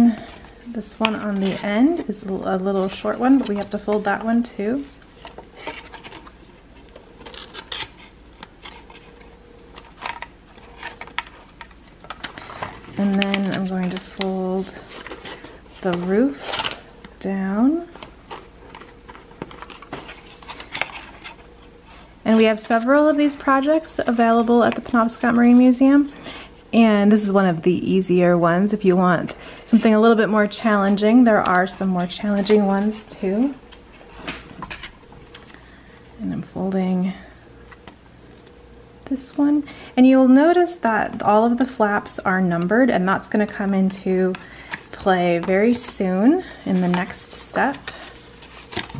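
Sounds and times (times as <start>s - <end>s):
cardstock crackling and rustling: 0.0s - 25.8s, 41.0s - 48.9s.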